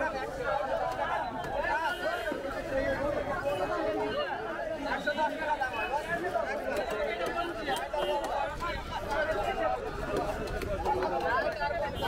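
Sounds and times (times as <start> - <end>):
crowd voices chattering: 0.0 - 12.0.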